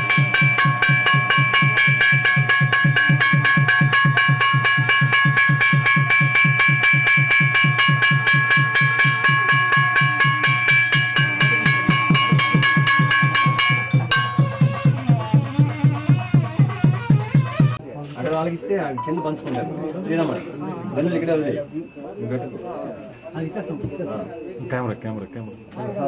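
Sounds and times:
bell ringing: 0.0 - 17.8, 19.0 - 26.0
fast drumbeat: 0.0 - 17.8.

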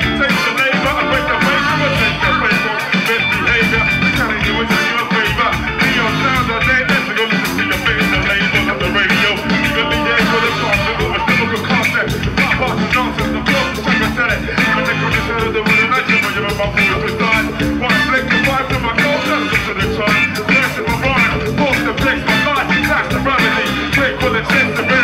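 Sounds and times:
live hip-hop band: 0.0 - 25.0.

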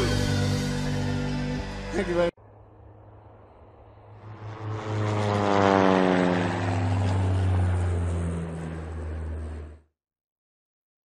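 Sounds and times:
propeller airplane flying past: 0.2 - 10.0.

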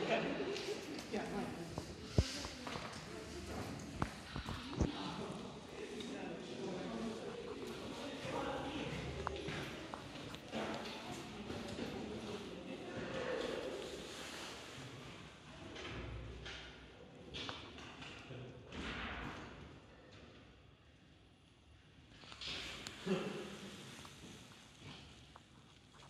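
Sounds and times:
indistinct voices: 0.0 - 12.2.

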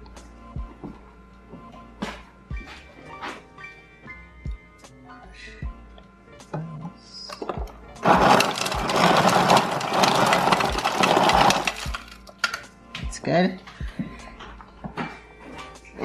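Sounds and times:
ice dispenser crushing ice: 7.5 - 12.6.

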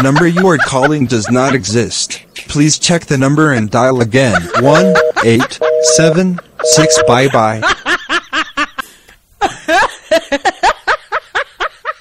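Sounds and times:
person laughing in quick bursts: 4.4 - 5.6.

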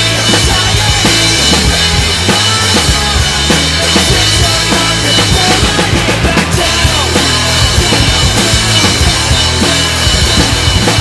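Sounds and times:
drum kit playing rock beat: 0.0 - 11.0
pop-punk song with guitars: 0.0 - 11.0.

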